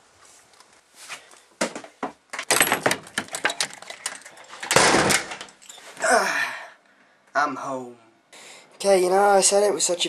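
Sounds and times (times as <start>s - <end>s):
door handles and latches clicking: 2.4s - 5.8s.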